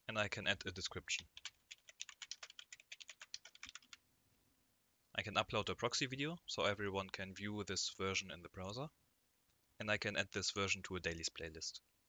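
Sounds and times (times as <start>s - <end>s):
typing on computer keyboard: 1.3s - 4.0s.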